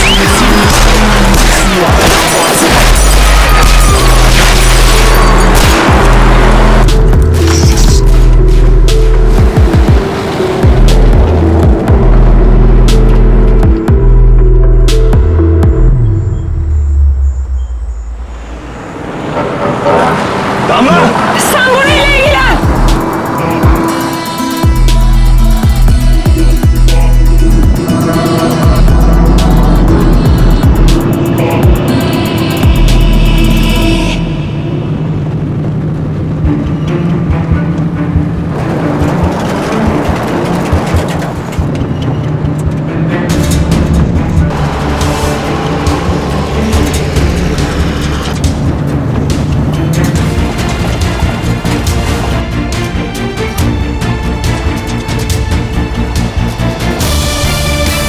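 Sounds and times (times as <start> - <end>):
dramatic film score: 0.0 - 58.0
low vehicle engine rumble: 22.0 - 57.6.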